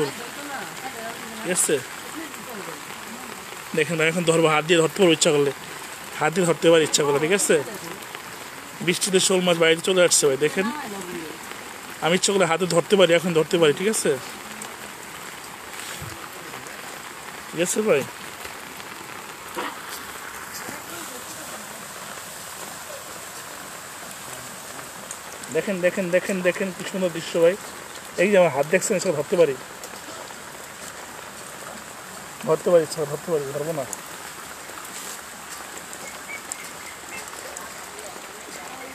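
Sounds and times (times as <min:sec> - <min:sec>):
rain falling on puddles: 0:00.0 - 0:38.9.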